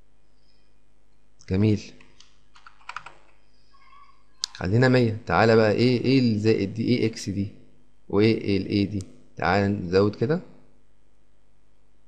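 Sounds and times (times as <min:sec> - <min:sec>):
computer keyboard keystrokes: 0:02.0 - 0:03.4.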